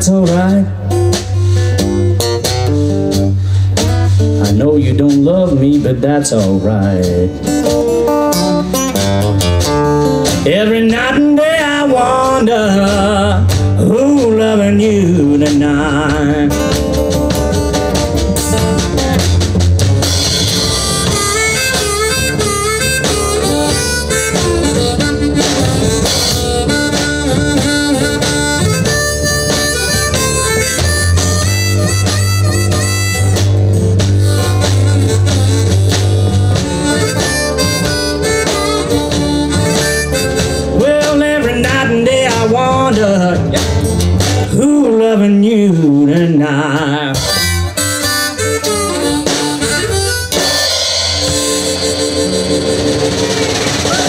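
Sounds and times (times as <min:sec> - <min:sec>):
acoustic guitar: 0:00.0 - 0:54.0
drums: 0:00.0 - 0:54.0
upright bass: 0:00.0 - 0:54.0
harmonica bending notes: 0:14.8 - 0:44.5, 0:47.1 - 0:54.0.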